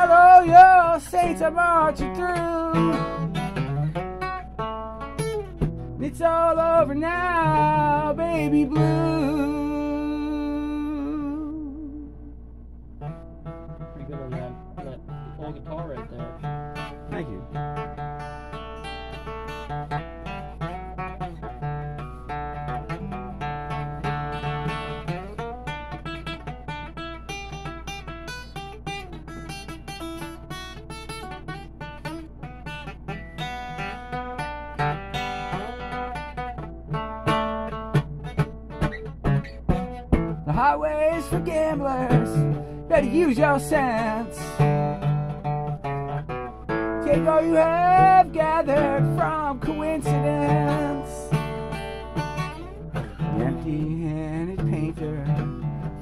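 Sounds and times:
person singing with vibrato: 0:00.0 - 0:03.2, 0:06.0 - 0:12.3, 0:40.5 - 0:44.6, 0:47.0 - 0:51.5, 0:53.2 - 0:55.4
steady low hum: 0:00.0 - 0:55.8
acoustic guitar picking: 0:00.0 - 0:56.0.

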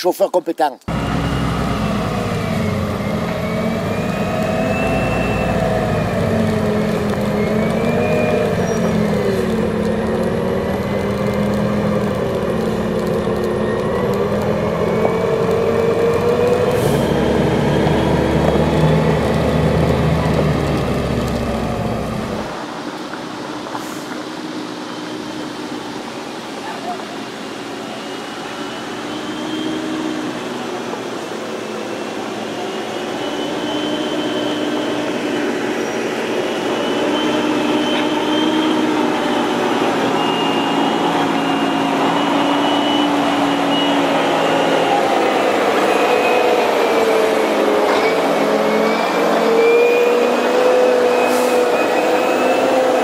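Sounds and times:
diesel truck engine under load: 0:00.9 - 0:53.0.

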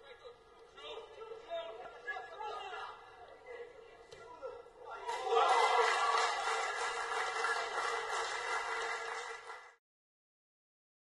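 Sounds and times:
football match crowd rush: 0:05.0 - 0:09.8.

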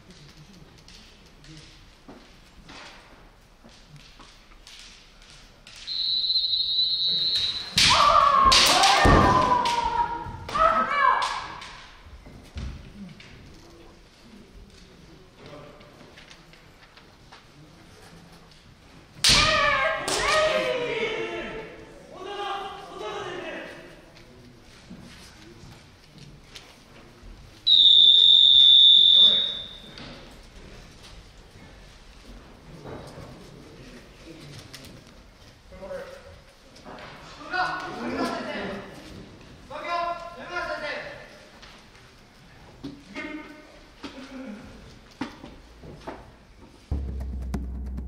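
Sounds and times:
long whistle blast: 0:05.9 - 0:07.8, 0:27.7 - 0:29.9
people shouting: 0:07.7 - 0:11.8, 0:19.3 - 0:23.5.

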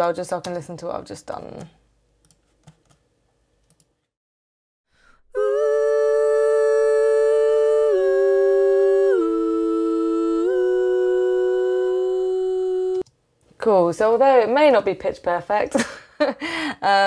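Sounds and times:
woman singing two-part harmony: 0:05.3 - 0:13.1.

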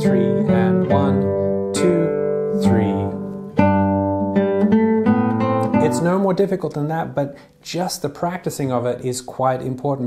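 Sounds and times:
classical guitar playing: 0:00.0 - 0:07.5.

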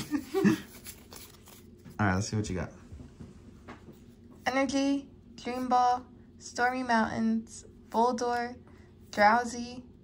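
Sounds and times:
person laughing: 0:00.0 - 0:00.8
trading cards being flipped: 0:00.7 - 0:01.9.

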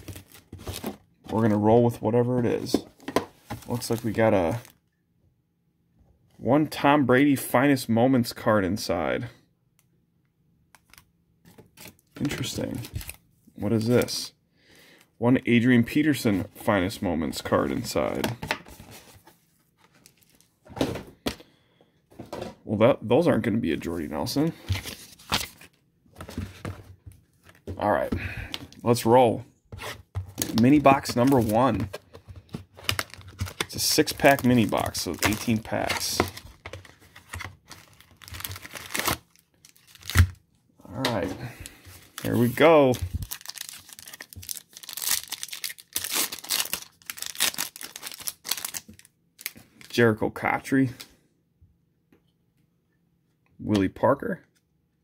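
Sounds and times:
foil packs rustling: 0:00.0 - 0:01.5, 0:30.4 - 0:40.3, 0:41.4 - 0:49.9.

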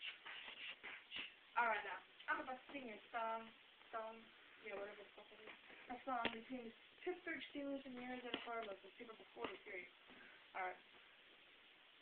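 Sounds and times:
shuffling and rustling: 0:00.0 - 0:01.4, 0:03.8 - 0:11.1
person speaking: 0:00.0 - 0:10.9.

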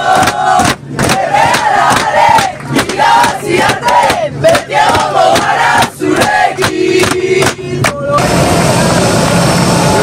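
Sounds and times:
group chanting and singing: 0:00.0 - 0:08.5
hands striking a beat: 0:00.1 - 0:08.0.

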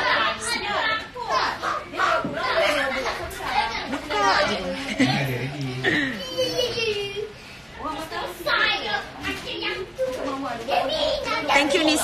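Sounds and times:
background chatter of voices: 0:00.0 - 0:12.0
people talking: 0:00.0 - 0:12.0.

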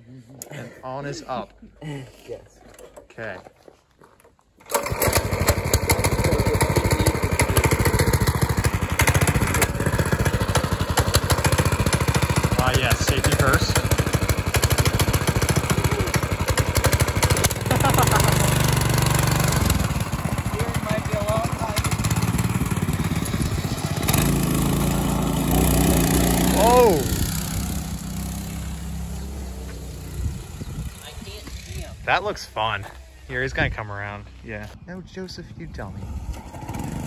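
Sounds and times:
go-kart engine revving: 0:04.6 - 0:32.1, 0:36.0 - 0:37.0.

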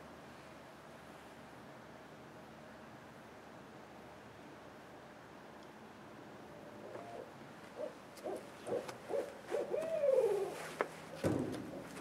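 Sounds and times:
owls hooting: 0:06.8 - 0:10.7.

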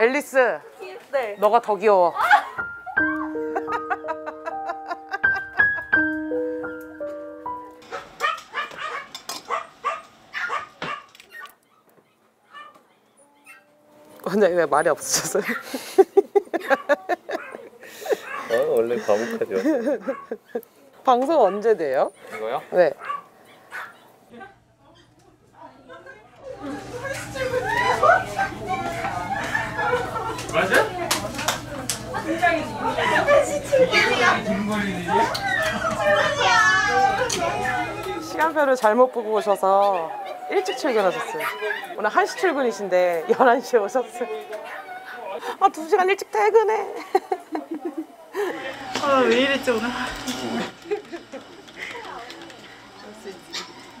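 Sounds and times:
piano music: 0:02.5 - 0:08.4
small dog yipping: 0:07.9 - 0:12.8, 0:13.4 - 0:13.7, 0:21.4 - 0:24.0, 0:53.5 - 0:53.8.

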